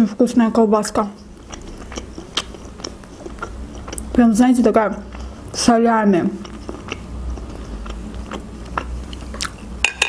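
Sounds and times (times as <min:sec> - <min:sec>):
person chewing food: 0:01.2 - 0:04.3, 0:04.9 - 0:05.7, 0:06.4 - 0:10.0
sticky mouth clicks: 0:01.4 - 0:04.2, 0:06.4 - 0:09.6.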